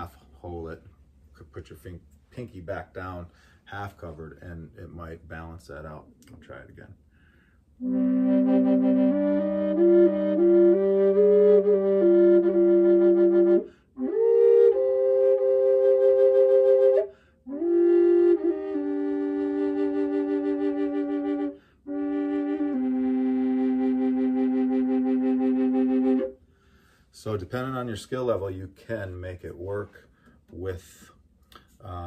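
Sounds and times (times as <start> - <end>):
player breathing: 7.1 - 7.7, 26.4 - 27.1
drone flute playing a melody: 7.8 - 26.4.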